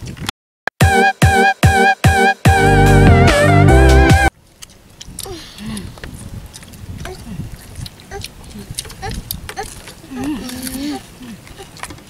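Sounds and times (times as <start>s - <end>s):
music: 0.8s - 4.3s
light clicks and rustles of eating: 4.5s - 12.0s
small children murmuring: 7.0s - 7.5s, 8.1s - 11.9s.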